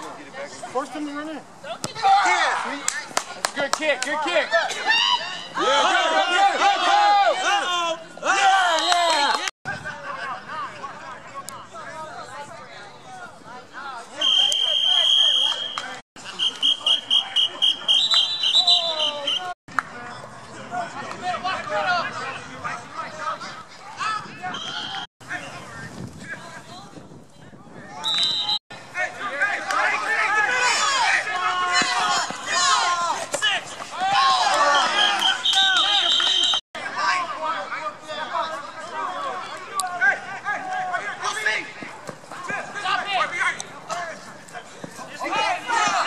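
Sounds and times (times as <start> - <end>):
people talking: 0.0 - 46.0
people shouting: 1.8 - 2.8, 4.3 - 9.5, 28.9 - 41.8, 45.1 - 46.0
referee's whistle: 14.2 - 19.6, 24.5 - 25.1, 28.0 - 28.6, 34.6 - 36.6.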